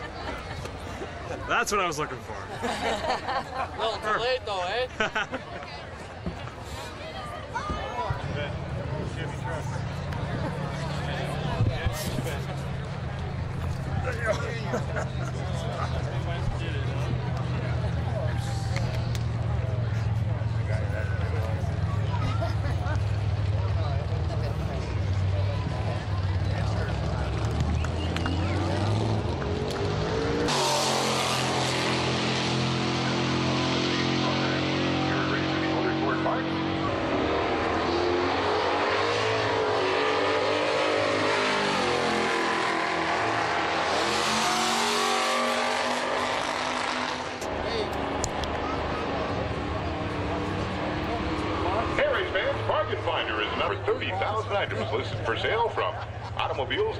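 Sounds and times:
drag racing engines rumbling: 0.0s - 56.9s
engine running at full throttle: 8.0s - 56.9s.

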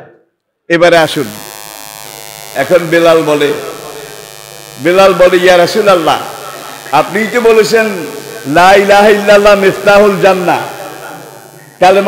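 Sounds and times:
electrical hum and buzz: 0.8s - 12.0s
man speaking over public address: 2.6s - 4.1s, 4.8s - 12.0s.

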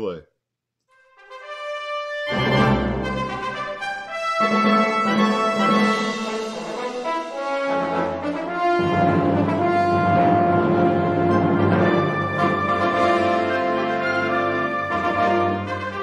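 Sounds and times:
tuba and brass ensemble: 1.0s - 16.0s.

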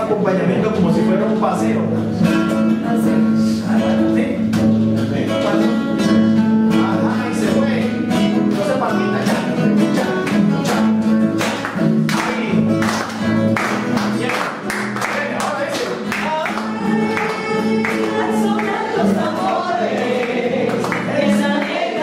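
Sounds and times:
acoustic guitars strumming chords: 0.0s - 22.0s.

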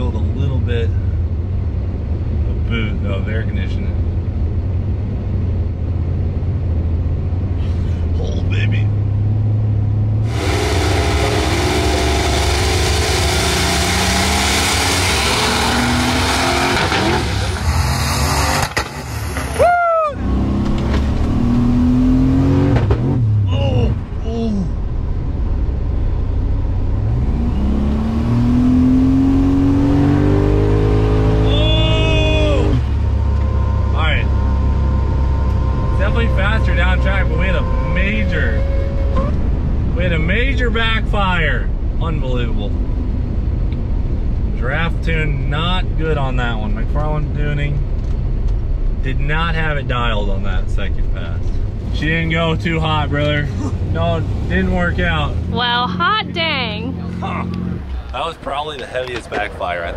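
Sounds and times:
drag car engine at full throttle: 10.1s - 19.6s.

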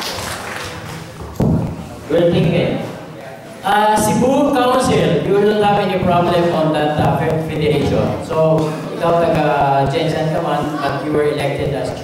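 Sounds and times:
faint voices in large hall: 0.0s - 12.0s.

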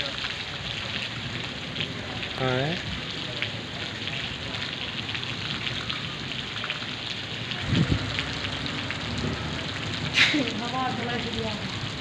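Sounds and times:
rain pattering: 0.0s - 12.0s.

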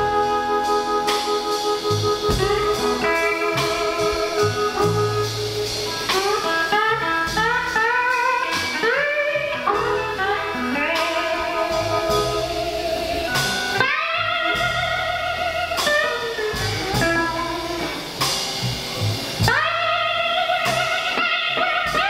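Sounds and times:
bass guitar: 0.0s - 22.0s
drums: 0.0s - 22.0s
electric guitar solo: 0.0s - 22.0s.

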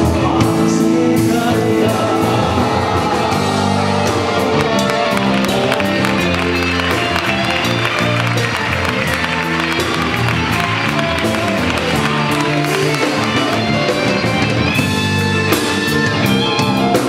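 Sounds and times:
bass guitar: 0.0s - 17.0s
drum kit beat: 0.0s - 17.0s
electric guitar: 0.0s - 17.0s.

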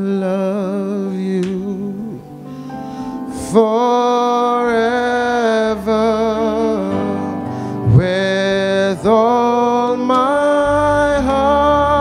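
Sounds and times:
man singing long notes: 0.0s - 2.5s, 3.2s - 12.0s
instrumental backing: 0.0s - 12.0s.

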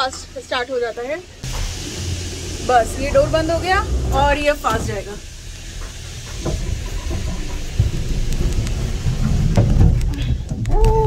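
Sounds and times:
gondola cabin rumbling and rattling: 0.0s - 11.0s
steady high tone: 1.8s - 5.3s.

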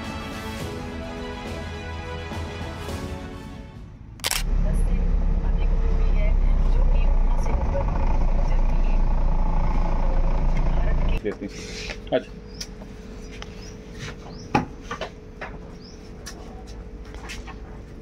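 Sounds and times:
background music: 0.0s - 4.2s
car driving rumble from inside: 4.4s - 11.2s.

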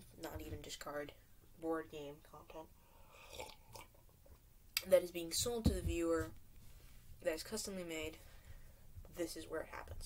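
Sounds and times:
person speaking: 0.0s - 2.7s, 4.8s - 6.4s, 7.2s - 8.3s, 9.1s - 10.0s
sipping and swallowing: 3.2s - 4.1s.

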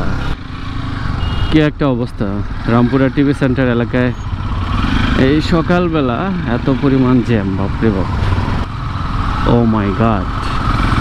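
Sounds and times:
motorcycle engine running: 0.0s - 11.0s
street traffic: 0.0s - 11.0s
person talking: 5.2s - 8.2s, 9.4s - 10.6s.

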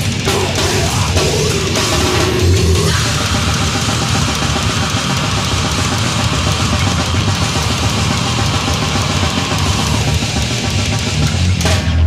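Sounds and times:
distorted guitars: 0.0s - 12.0s
fast drum-kit playing: 0.0s - 12.0s.

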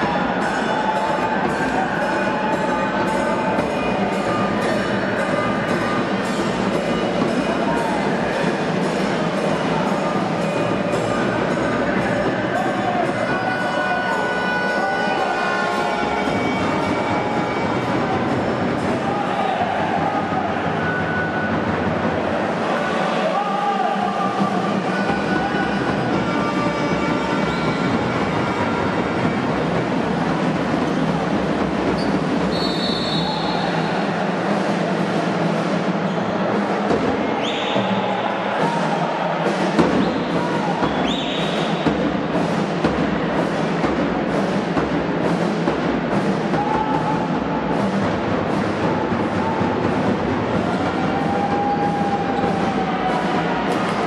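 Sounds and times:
crowd chatter: 0.0s - 54.0s
basketball shoes squeaking: 32.0s - 32.2s.

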